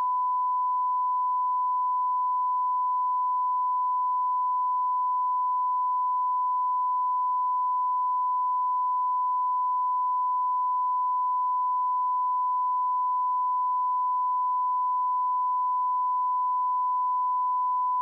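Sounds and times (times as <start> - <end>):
steady test tone beep: 0.0 - 18.0.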